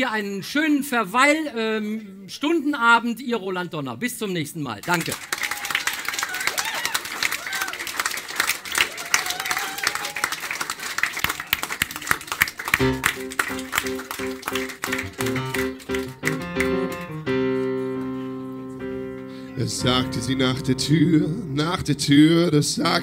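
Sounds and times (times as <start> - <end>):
audience applauding: 4.8 - 17.7
music with held chords: 12.8 - 19.3.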